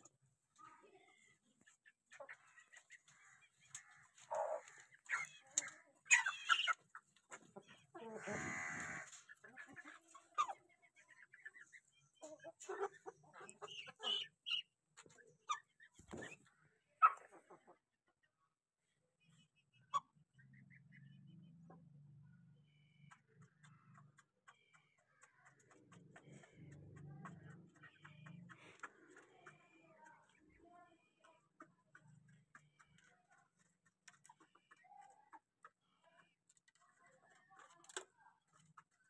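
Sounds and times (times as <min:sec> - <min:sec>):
chickens clucking and calling: 0:01.1 - 0:18.3, 0:19.3 - 0:39.0.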